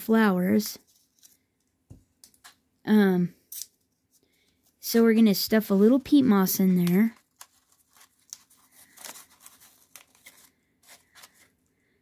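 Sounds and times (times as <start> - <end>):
crackling of dry moss and paper: 0.6 - 1.5, 4.1 - 12.0.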